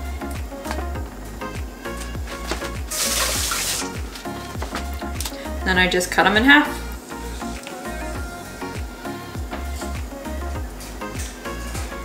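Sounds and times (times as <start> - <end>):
background music with beat: 0.0 - 12.0
tap running: 2.1 - 5.4.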